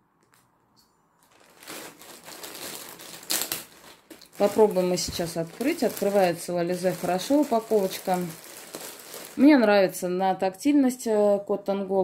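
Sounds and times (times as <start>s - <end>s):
plastic packaging crinkling: 1.2s - 10.0s.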